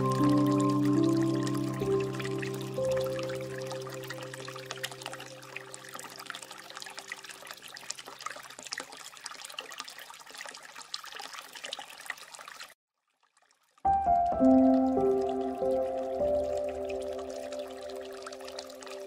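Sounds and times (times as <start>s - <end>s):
new music: 0.0s - 4.9s, 13.9s - 19.0s
soft music: 0.0s - 6.3s, 13.9s - 19.0s
water trickling and splashing: 0.0s - 19.0s.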